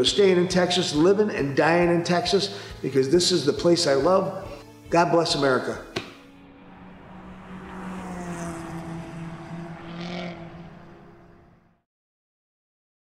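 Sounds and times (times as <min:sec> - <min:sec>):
engine-like hum: 0:06.2 - 0:11.8.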